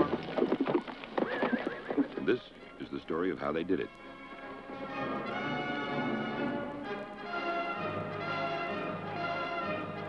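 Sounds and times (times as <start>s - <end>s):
clatter of hooves: 0.0s - 2.5s
horse neighing: 0.4s - 2.3s.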